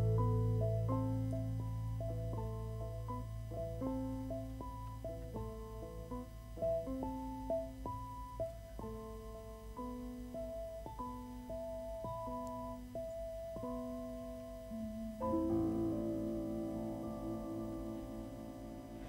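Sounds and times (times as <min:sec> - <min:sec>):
low hum: 0:12.4 - 0:19.0.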